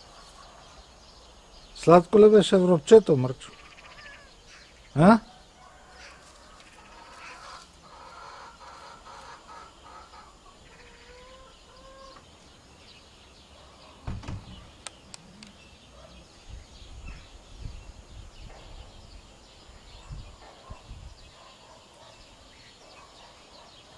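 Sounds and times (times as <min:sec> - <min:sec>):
faint bird calls: 0:03.4 - 0:17.4.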